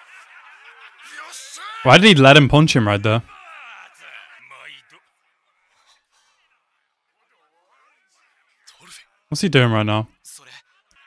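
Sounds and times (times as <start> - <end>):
man speaking loudly: 1.1 - 3.3, 9.3 - 10.1
faint voices from cartoon: 3.2 - 9.2.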